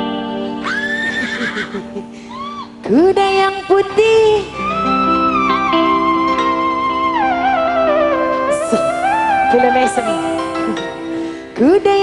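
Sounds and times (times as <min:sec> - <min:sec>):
horse whinny: 0:00.6 - 0:02.6
band held notes: 0:04.4 - 0:11.6.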